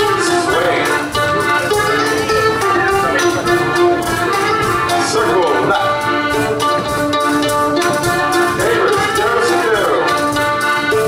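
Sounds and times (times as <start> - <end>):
folk dance band playing: 0.0 - 11.0.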